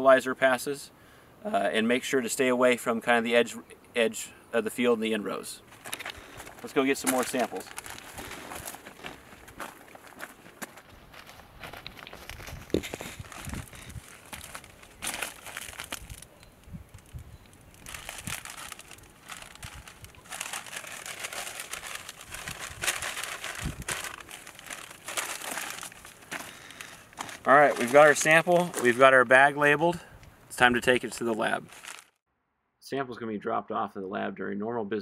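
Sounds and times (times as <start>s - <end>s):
plants rustling: 5.6s - 32.2s
paper bag crinkling: 5.7s - 16.3s, 17.0s - 29.4s, 31.0s - 32.2s.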